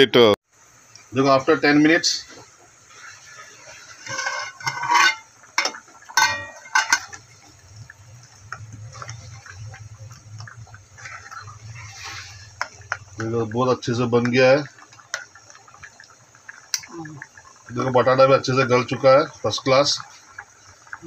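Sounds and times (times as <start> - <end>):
curry bubbling: 0.6 - 21.0
low steady hum: 0.6 - 21.0
ladle scraping pot: 2.9 - 16.1
metal pot lid clanking: 4.0 - 7.2.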